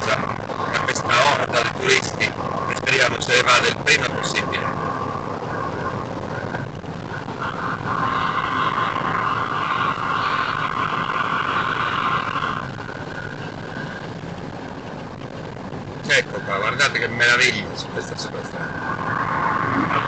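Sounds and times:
car engine and tyre noise: 0:00.0 - 0:20.0.

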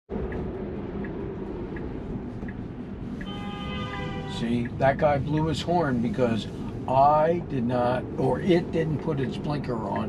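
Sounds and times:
turn signal ticking: 0:00.1 - 0:05.7, 0:07.8 - 0:10.0
car cabin road noise: 0:00.1 - 0:10.0.

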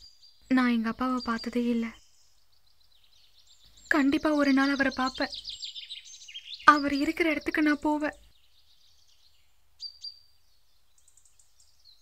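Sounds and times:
faint birds chirping: 0:00.0 - 0:12.0
girl speaking: 0:00.5 - 0:02.0, 0:03.9 - 0:05.3, 0:06.7 - 0:08.2.

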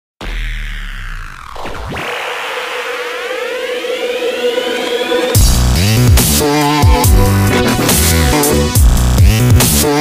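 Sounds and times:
siren-like synth riser: 0:00.2 - 0:08.2
dubstep track: 0:00.2 - 0:10.0.

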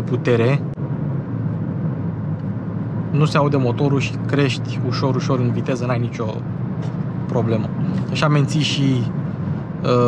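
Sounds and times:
low hum: 0:00.0 - 0:10.0
road and tyre rumble: 0:00.0 - 0:10.0.

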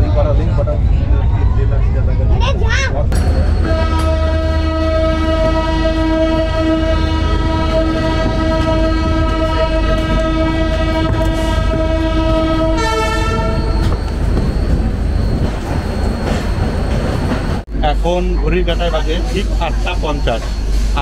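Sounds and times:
moving train rumble: 0:00.0 - 0:21.0
train horn blast: 0:03.5 - 0:13.9
second horn tone: 0:03.5 - 0:14.0.

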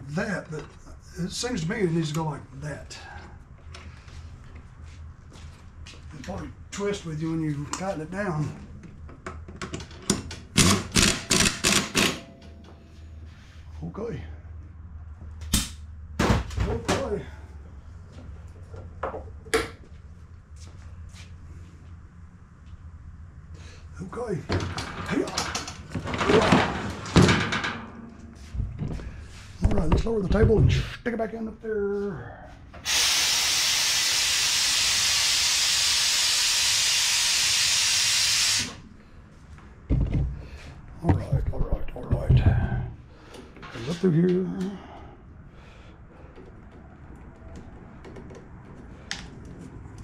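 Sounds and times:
metallic knocks and clanks: 0:24.5 - 0:29.0
pressurised gas hissing: 0:32.8 - 0:38.8.

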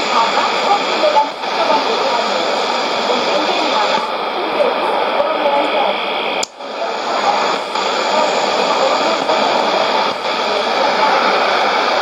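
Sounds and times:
radio hiss and static: 0:00.0 - 0:12.0
radio tuning click: 0:00.0 - 0:12.0.

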